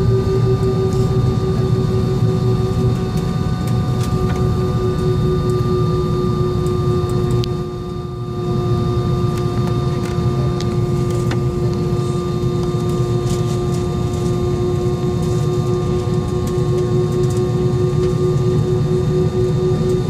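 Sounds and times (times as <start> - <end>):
jet engines idling in cabin: 0.0 - 20.0.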